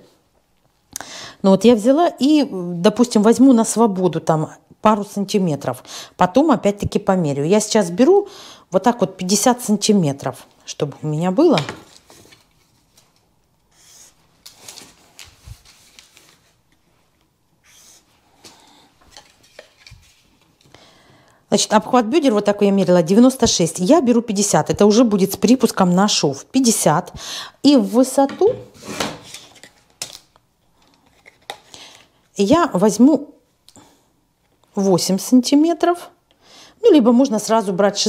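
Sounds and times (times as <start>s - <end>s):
tracing paper rustling: 11.8s - 18.1s, 19.1s - 20.7s.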